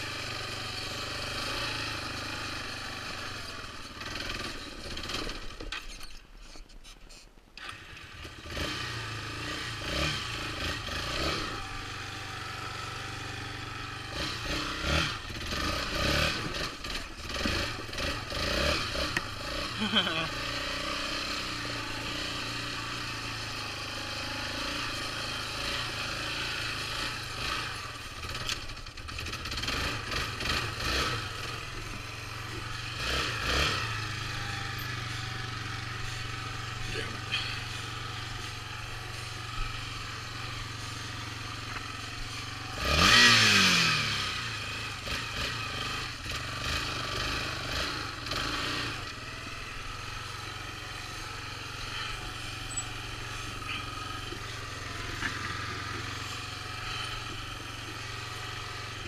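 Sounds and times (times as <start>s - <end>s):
engine revving: 0.0s - 5.6s, 7.6s - 59.0s
atv engine idling: 0.0s - 5.8s, 7.6s - 59.0s.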